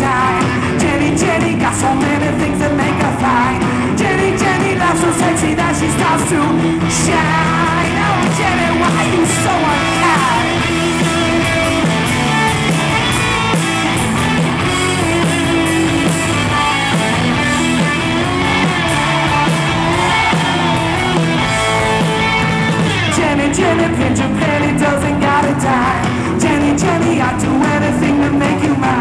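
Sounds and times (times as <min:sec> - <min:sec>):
man singing: 0:00.0 - 0:11.3, 0:23.0 - 0:29.0
bass: 0:00.0 - 0:29.0
distorted electric guitars: 0:00.0 - 0:29.0
drums: 0:00.0 - 0:29.0.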